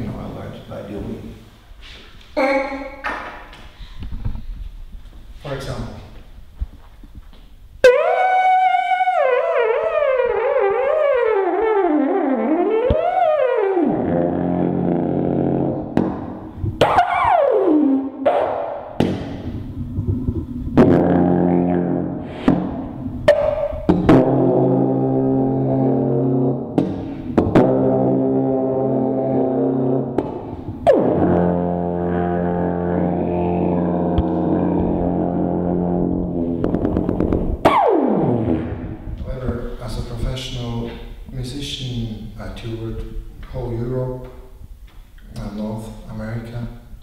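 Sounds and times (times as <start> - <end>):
alphorn playing: 7.8 - 16.0, 20.8 - 22.4, 23.3 - 26.8, 27.4 - 38.8.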